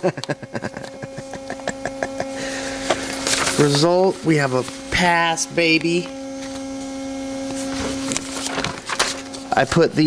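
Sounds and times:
steady electrical hum: 0.0s - 10.0s
paper rustling: 2.9s - 3.9s, 7.5s - 9.4s.

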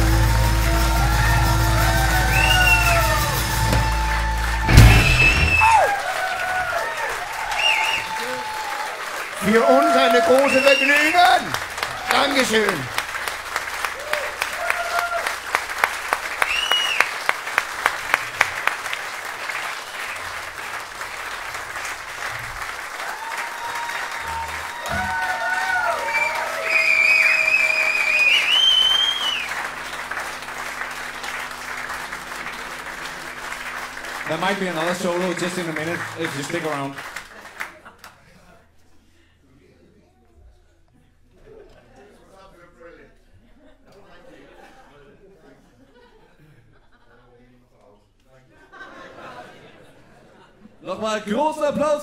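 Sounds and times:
audience applause: 0.0s - 38.2s.

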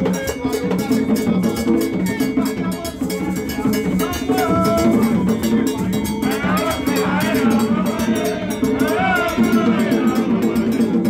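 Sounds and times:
percussion music: 0.0s - 11.0s.

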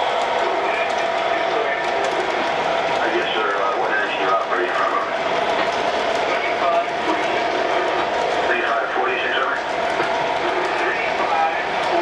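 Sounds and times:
diesel locomotive engine drone: 0.0s - 12.0s
model train cars rolling on track: 0.0s - 12.0s.

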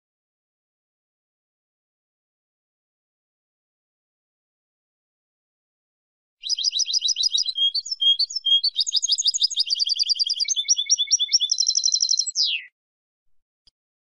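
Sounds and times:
goldfinch twittering: 6.4s - 12.7s.

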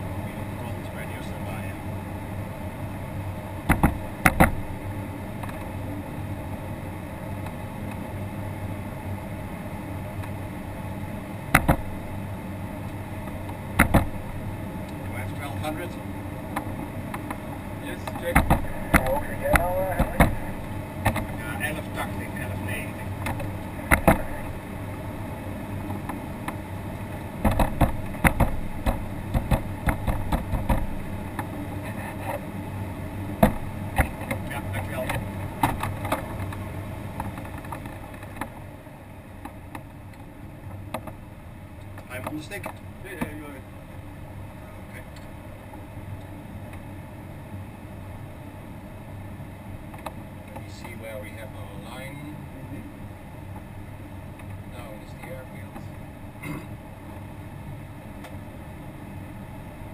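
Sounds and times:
faint airplane engine: 0.0s - 59.9s
airframe clicks and knocks: 3.6s - 4.8s, 11.5s - 12.0s, 13.3s - 14.2s, 18.0s - 21.4s, 23.2s - 24.5s, 27.4s - 31.5s.

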